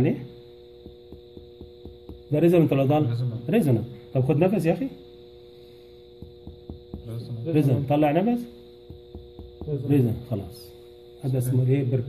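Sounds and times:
light finger taps on chest: 0.8s - 2.3s, 6.2s - 7.2s, 8.8s - 9.8s.

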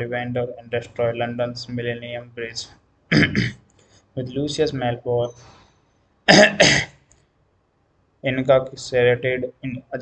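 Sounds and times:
man coughing: 3.1s - 3.6s, 6.3s - 7.0s.

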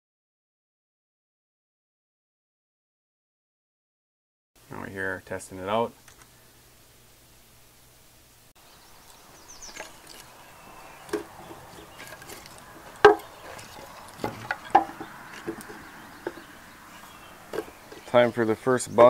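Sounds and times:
wooden sticks knocking: 11.0s - 19.0s.

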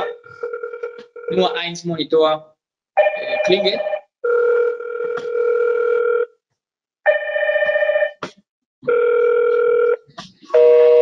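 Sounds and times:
intercom electronic ringtone: 0.0s - 1.6s, 3.0s - 6.3s, 7.1s - 8.2s, 8.9s - 11.0s.

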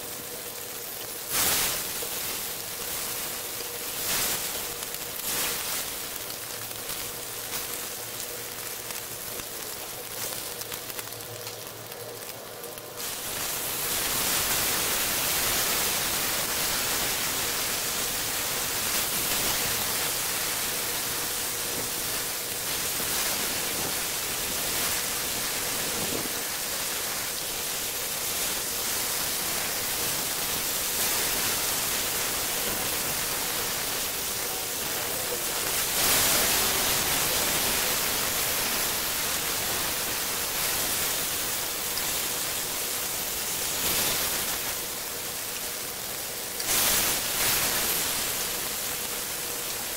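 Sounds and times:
meat sizzling in a grill pan: 0.0s - 49.9s.

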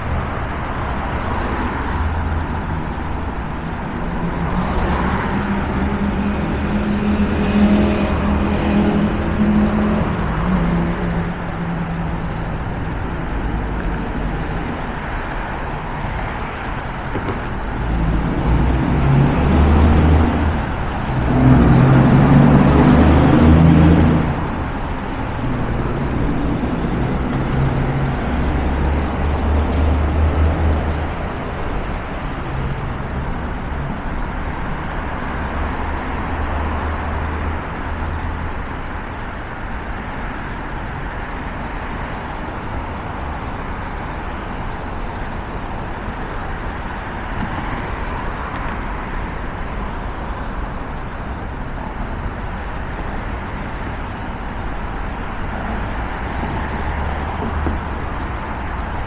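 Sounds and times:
cars on bridge roadway: 0.0s - 59.0s
drone of freeway traffic: 0.0s - 59.0s
vehicle passing with engine hum: 17.6s - 38.4s.

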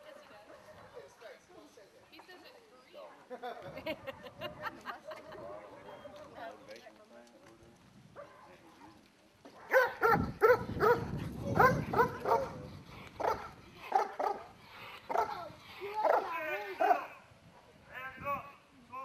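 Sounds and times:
dog barking: 8.2s - 9.0s, 9.6s - 12.6s, 13.2s - 14.5s, 15.1s - 15.4s, 16.1s - 17.1s.

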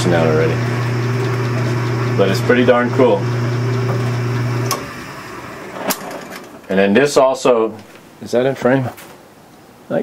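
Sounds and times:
lathe motor humming: 0.0s - 6.6s.

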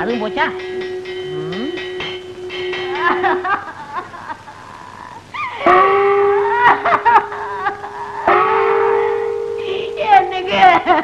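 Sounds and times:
steady held tone: 0.0s - 11.0s.

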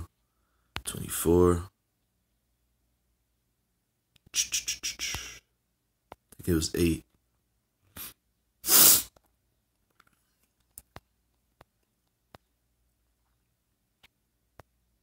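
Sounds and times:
faint low hum and hiss: 0.0s - 15.0s
man sneezing: 8.0s - 9.1s.

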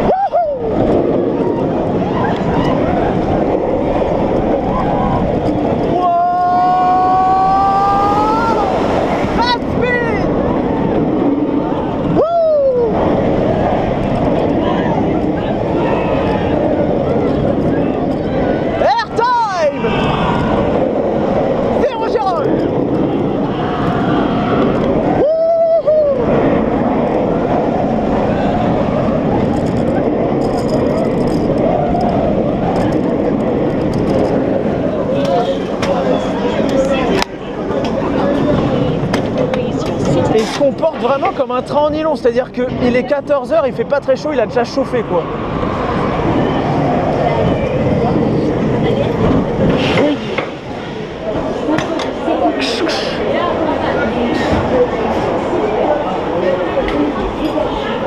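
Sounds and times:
roller coaster wind and track roar: 0.0s - 58.0s
riders yelling: 4.7s - 10.6s.

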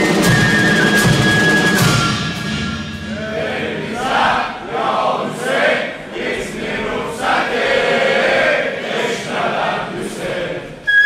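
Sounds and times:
crowd of men chanting: 3.2s - 10.7s.

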